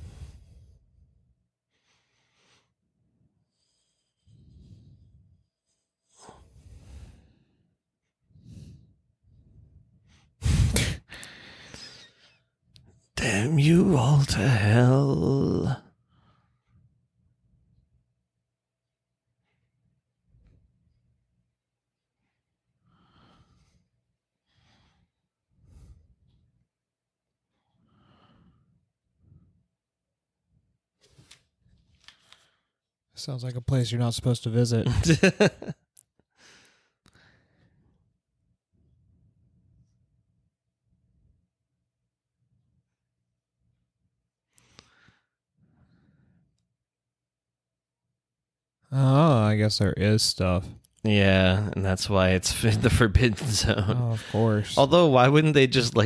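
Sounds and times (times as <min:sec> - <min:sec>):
person breathing: 0:00.0 - 0:12.5, 0:22.2 - 0:26.6, 0:27.5 - 0:29.7, 0:36.3 - 0:38.1, 0:44.5 - 0:46.6, 0:53.4 - 0:54.8
person laughing: 0:34.8 - 0:35.8.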